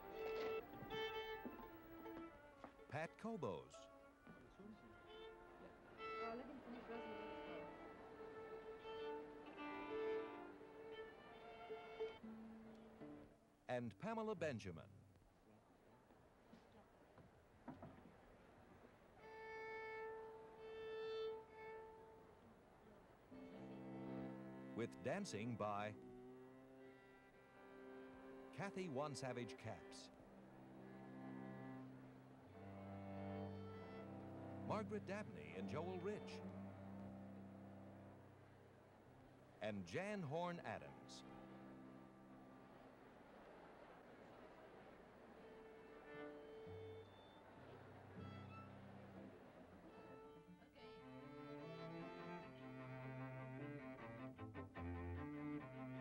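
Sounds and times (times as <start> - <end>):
string quartet playing: 0.0 - 13.3, 19.2 - 22.4, 23.3 - 39.6, 40.2 - 43.4, 45.0 - 56.0
violin long bowed notes: 0.0 - 13.3, 19.2 - 22.5, 23.3 - 39.6, 40.5 - 43.1, 45.2 - 56.0
low cello note: 23.3 - 39.3.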